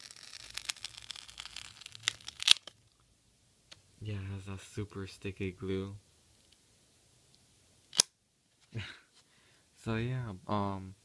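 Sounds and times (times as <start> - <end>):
glue and plastic tearing: 0.0 - 2.9.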